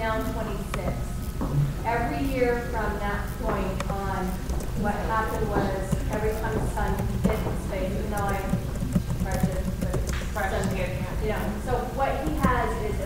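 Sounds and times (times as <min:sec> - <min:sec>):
woman talking: 0:00.0 - 0:01.2, 0:01.8 - 0:13.0.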